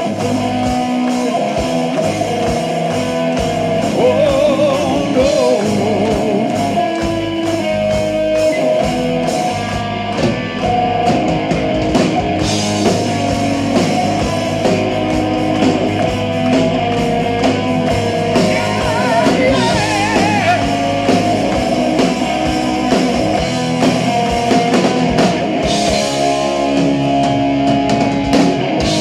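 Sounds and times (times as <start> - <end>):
bass guitar: 0.0 - 29.0
distorted electric guitars: 0.0 - 29.0
drum kit: 0.0 - 29.0
lead guitar melody with vibrato: 0.0 - 29.0.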